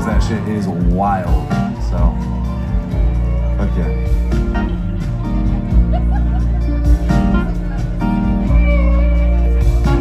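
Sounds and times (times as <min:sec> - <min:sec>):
electric guitars: 0:00.0 - 0:10.0
heavy bass: 0:00.0 - 0:10.0
live band through loudspeakers: 0:00.0 - 0:10.0.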